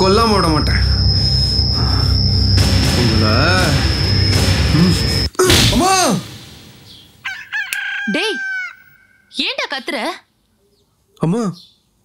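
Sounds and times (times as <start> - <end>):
rooster crowing: 7.2 - 9.3.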